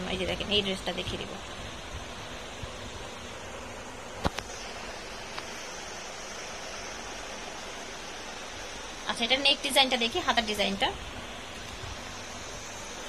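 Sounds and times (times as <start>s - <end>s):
room background hiss: 0.0s - 13.0s.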